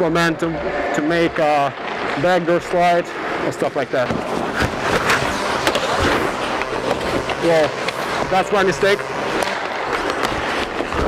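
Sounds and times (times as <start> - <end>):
skates scraping on ice: 3.4 - 11.0.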